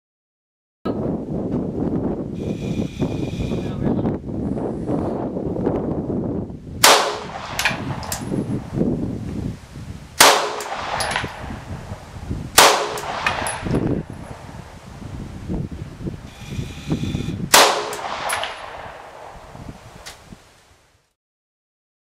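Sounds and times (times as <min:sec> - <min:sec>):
rifle shots with echo: 0:06.8 - 0:08.3, 0:10.2 - 0:14.5, 0:17.5 - 0:19.5.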